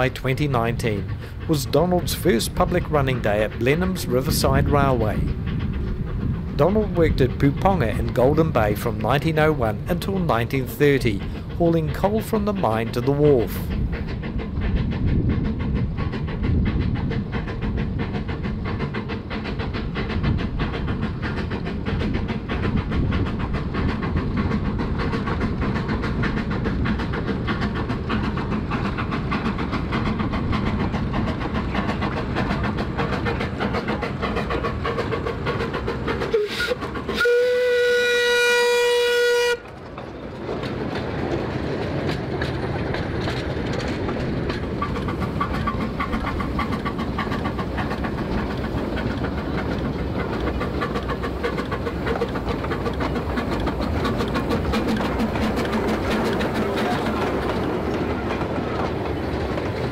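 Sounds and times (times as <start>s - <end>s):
steam locomotive exhaust: 0.0s - 40.0s, 41.5s - 59.9s
steam whistle: 36.3s - 39.6s.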